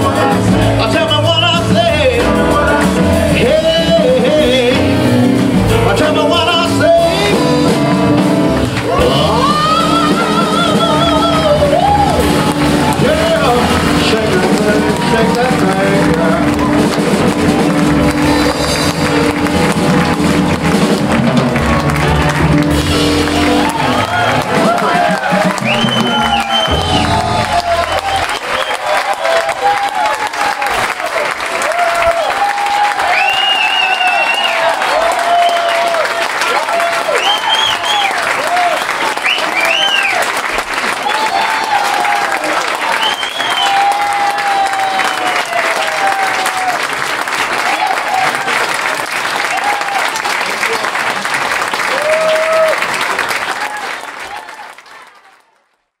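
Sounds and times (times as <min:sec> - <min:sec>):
audience applauding and cheering: 0:00.0 - 0:56.0.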